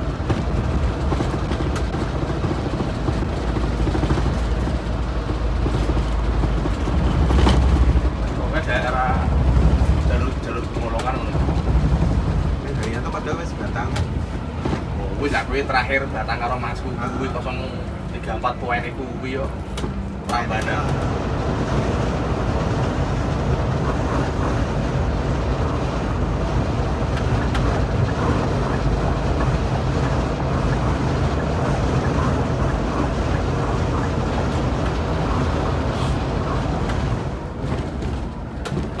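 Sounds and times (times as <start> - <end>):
coach engine drone: 0.0 - 39.0
tyre and road noise: 0.0 - 39.0.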